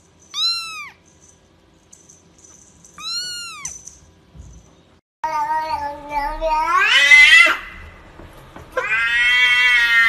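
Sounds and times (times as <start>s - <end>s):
kitten mewing: 3.0s - 3.7s.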